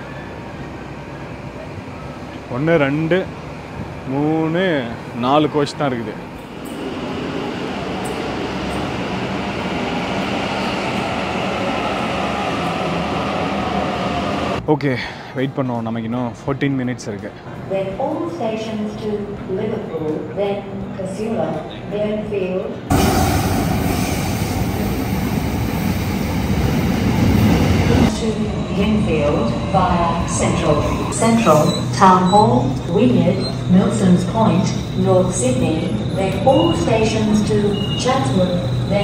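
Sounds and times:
freight train rumbling past: 0.0 - 14.6, 22.7 - 39.0
train wheels rumbling: 6.0 - 14.6.

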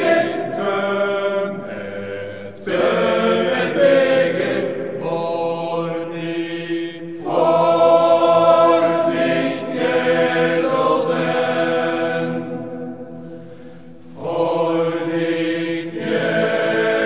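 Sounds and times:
male choir singing a cappella: 0.0 - 17.0.

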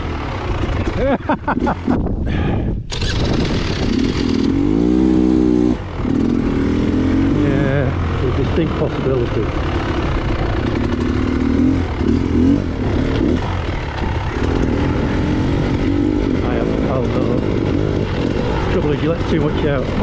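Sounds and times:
motorcycle engine revving: 0.0 - 2.2, 2.9 - 20.0.

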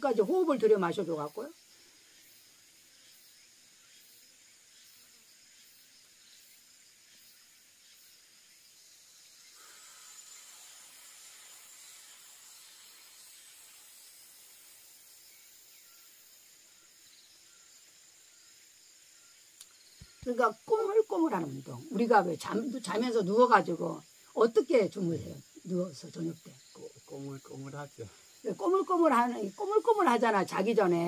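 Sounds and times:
faint hiss of insects: 0.0 - 31.0
slow exhale through lips: 9.6 - 12.1.

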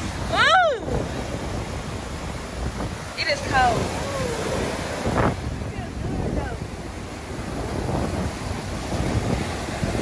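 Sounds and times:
surf washing on beach: 0.0 - 10.0
wind buffeting microphone: 0.0 - 10.0
high voice exclamation: 4.0 - 4.5.

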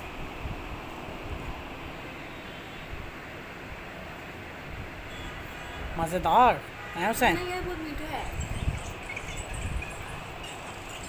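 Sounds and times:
continuous rushing noise: 0.0 - 11.0.

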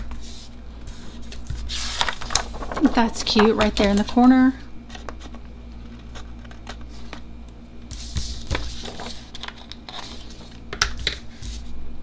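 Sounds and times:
paper rustling: 0.0 - 4.2, 7.9 - 10.6.

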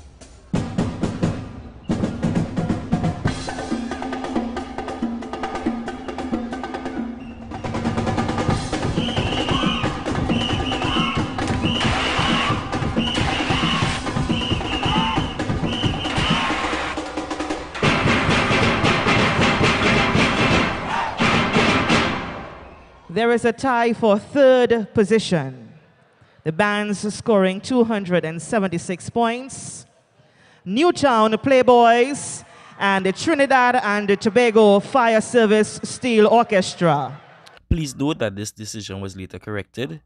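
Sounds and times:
percussion drums: 0.0 - 22.9.

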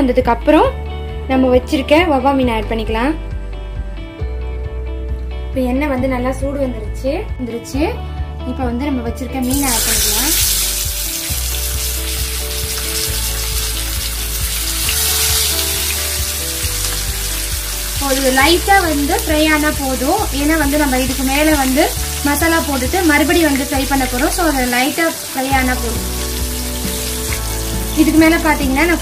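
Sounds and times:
fish sizzling in hot oil: 9.4 - 29.0.

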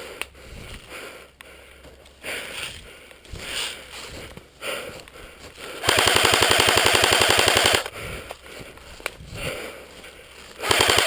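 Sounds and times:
airsoft rifle full-auto burst: 5.8 - 7.9, 10.6 - 11.0.

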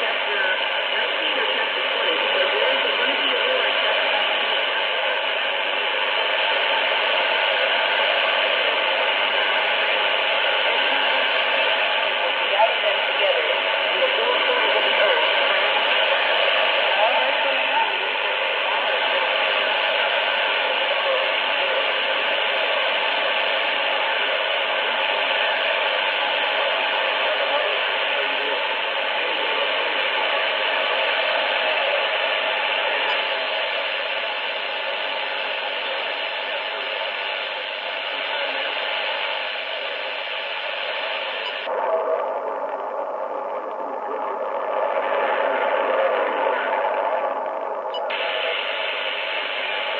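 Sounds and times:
faint radio voices: 0.0 - 49.9
radio static: 0.0 - 49.9.

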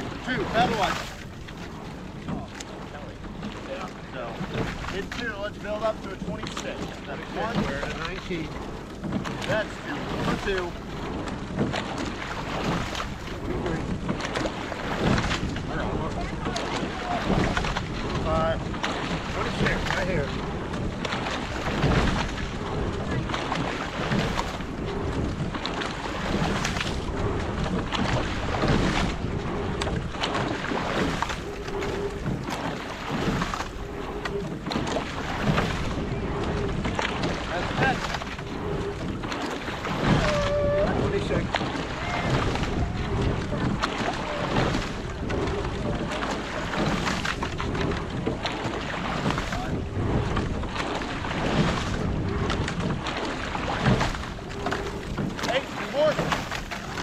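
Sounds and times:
oar handles and sliding seats: 0.0 - 57.0
oars pulling through water: 0.0 - 57.0
water washing past hull: 0.0 - 57.0
wind on microphone: 0.0 - 57.0.

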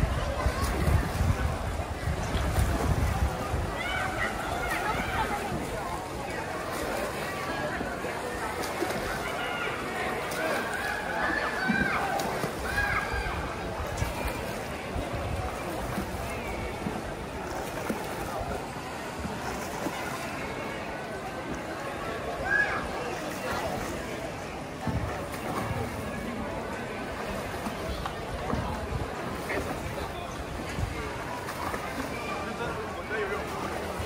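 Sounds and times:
wind rumble on microphone: 0.0 - 5.8, 13.1 - 16.9
crowd noise: 0.0 - 34.0
pool water splashing: 0.0 - 34.0.

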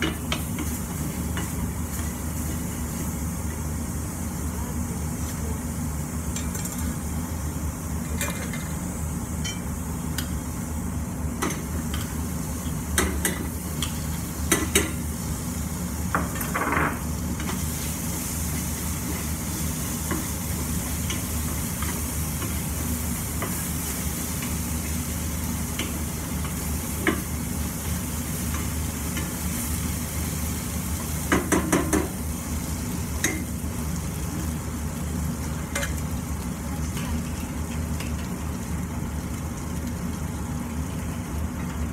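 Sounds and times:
food sizzling in a frying pan: 0.0 - 41.9
utensils knocking against pan: 31.3 - 32.2.

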